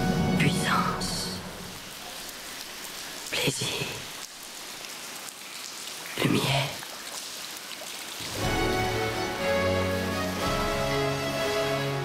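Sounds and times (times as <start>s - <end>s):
water splashing and dripping: 0.0s - 12.0s
baroque ensemble music: 8.4s - 12.0s.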